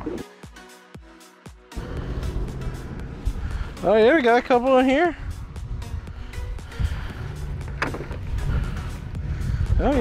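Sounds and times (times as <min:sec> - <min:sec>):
low outdoor rumble: 0:01.8 - 0:09.8.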